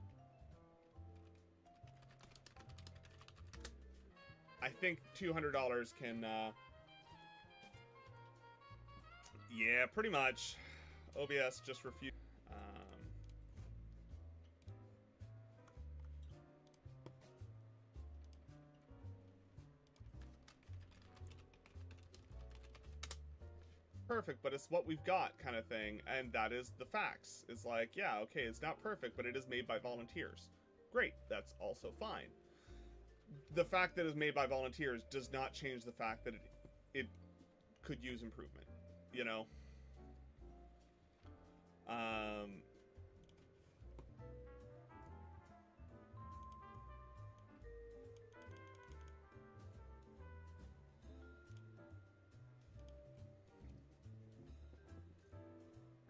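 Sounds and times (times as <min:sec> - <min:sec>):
typing on computer keyboard: 0:01.2 - 0:03.8, 0:19.9 - 0:23.2, 0:48.2 - 0:49.2.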